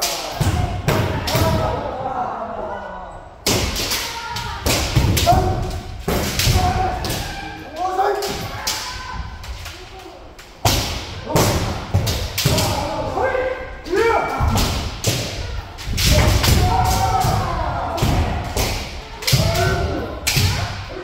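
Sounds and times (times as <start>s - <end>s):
people shouting: 0.0s - 21.0s.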